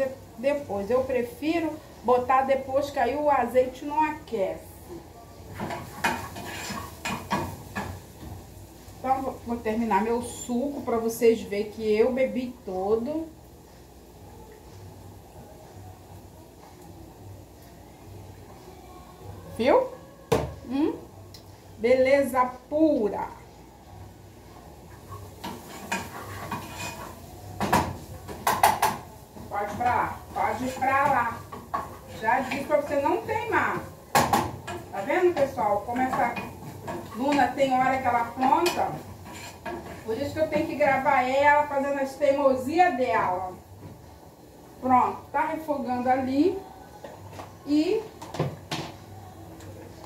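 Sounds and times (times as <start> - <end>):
metal pots clinking and knocking: 25.4 - 32.8
metal cookware clinking: 25.4 - 41.0.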